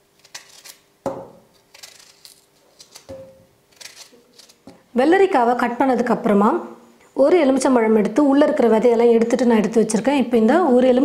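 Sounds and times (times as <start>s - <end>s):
knife slicing cucumber: 0.2s - 4.8s.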